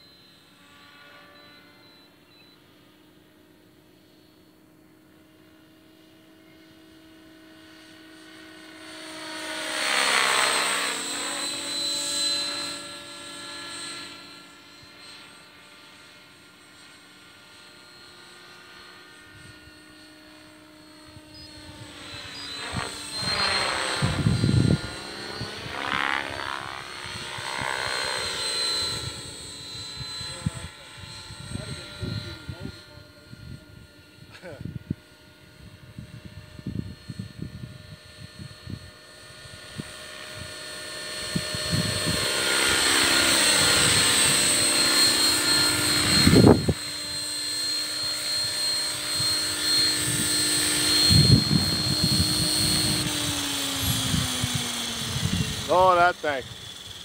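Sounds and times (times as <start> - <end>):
rc helicopter motor whine: 0.0 - 57.0.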